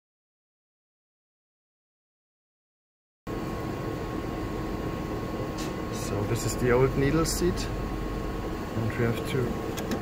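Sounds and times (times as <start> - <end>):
instrument hum and fan noise: 3.3 - 10.0
thin steady whine: 3.3 - 10.0.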